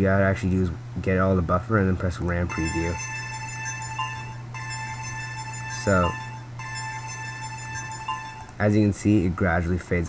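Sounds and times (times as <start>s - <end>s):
constant low hum: 0.0s - 10.0s
held high tones: 2.5s - 8.8s.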